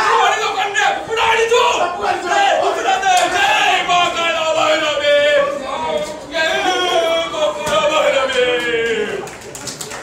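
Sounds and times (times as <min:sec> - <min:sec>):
group shouting together: 0:00.0 - 0:05.7.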